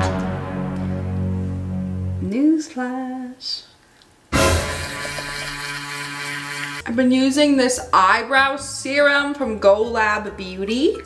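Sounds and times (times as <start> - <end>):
electric toothbrush buzzing: 4.4 - 6.8.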